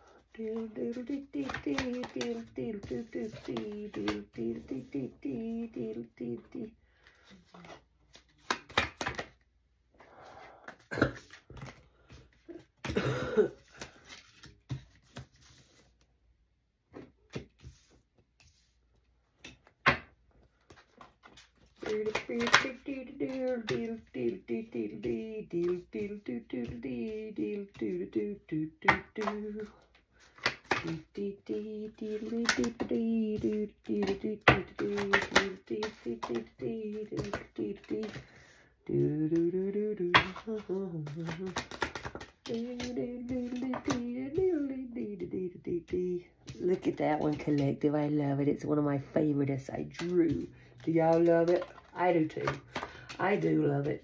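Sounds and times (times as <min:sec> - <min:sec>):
cards rustling: 0:00.1 - 0:05.6, 0:06.9 - 0:16.1, 0:17.2 - 0:28.1, 0:28.9 - 0:31.2, 0:32.0 - 0:44.7, 0:49.8 - 0:54.0
woman murmuring: 0:00.4 - 0:06.8
cards clicking together: 0:01.4 - 0:02.5, 0:08.2 - 0:09.4, 0:20.7 - 0:23.9, 0:28.9 - 0:31.0, 0:32.1 - 0:38.2, 0:40.1 - 0:44.2, 0:51.1 - 0:53.5.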